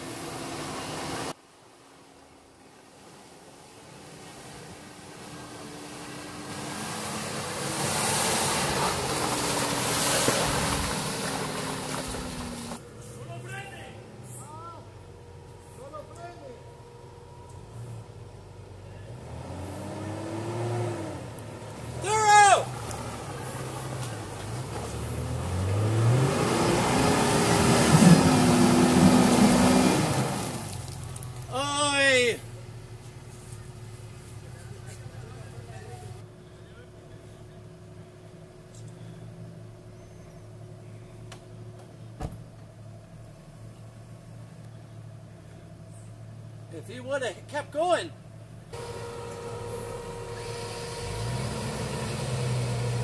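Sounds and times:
engine pulling through mud: 3.7 - 13.6, 17.6 - 46.8, 48.4 - 53.0
loud shout: 22.0 - 22.7, 31.5 - 32.4
engine running at low revs: 48.2 - 53.0.

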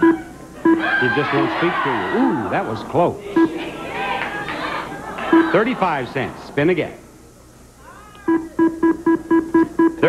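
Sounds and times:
short electronic beeps: 0.0 - 0.8, 8.3 - 10.0.

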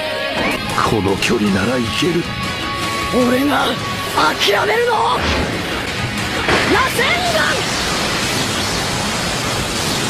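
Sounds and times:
loud rushing sound effect: 5.2 - 10.0.

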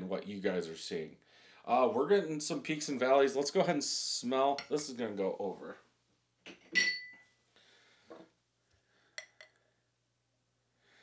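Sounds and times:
glassware clinking: 6.7 - 7.2, 9.2 - 9.6.

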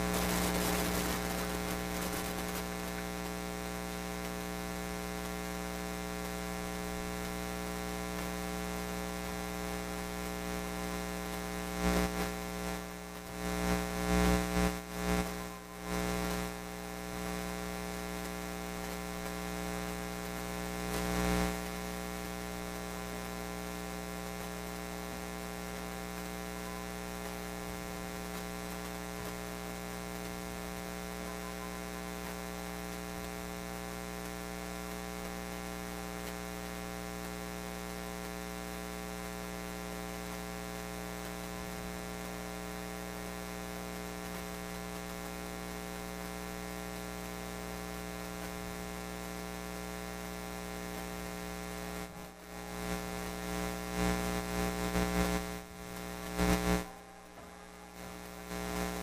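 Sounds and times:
electrical mains hum: 0.0 - 59.0.

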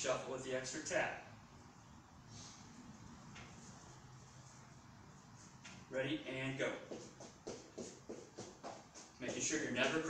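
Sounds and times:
sneaker footsteps on floor mat: 6.7 - 10.0.

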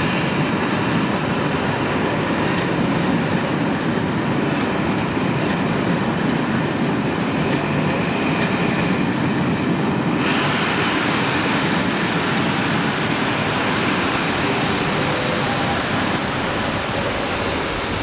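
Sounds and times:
train wheels rumbling on track: 0.0 - 18.0.

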